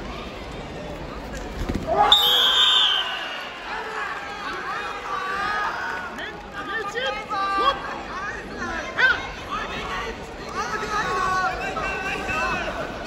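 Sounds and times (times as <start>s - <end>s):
crowd chatter in a hall: 0.0s - 13.0s.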